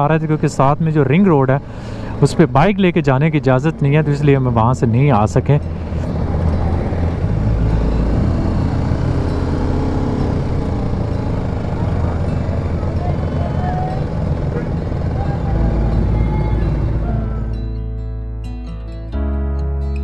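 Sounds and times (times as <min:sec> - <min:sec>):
motorcycle engine running: 0:00.0 - 0:17.7
surrounding traffic noise: 0:00.0 - 0:17.8.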